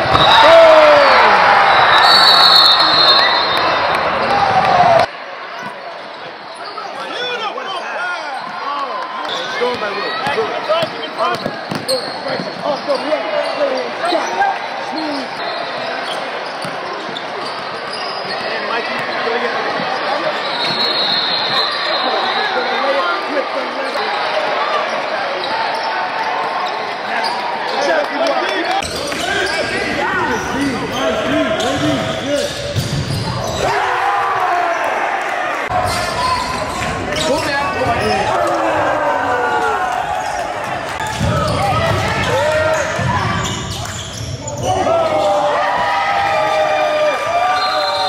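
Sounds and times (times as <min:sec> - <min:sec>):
people shouting and chattering: 0:00.0 - 0:48.0.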